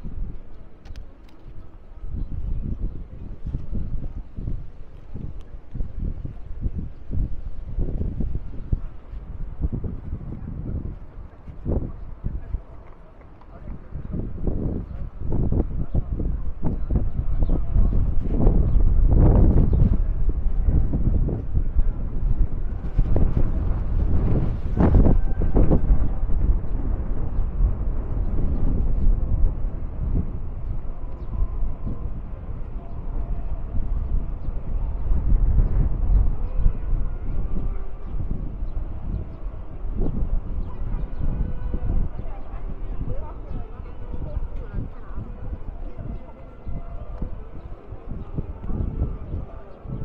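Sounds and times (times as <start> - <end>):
faint voices of passers-by: 0.0 - 50.0
outdoor street ambience: 0.0 - 50.0
wind buffeting microphone: 0.0 - 50.0.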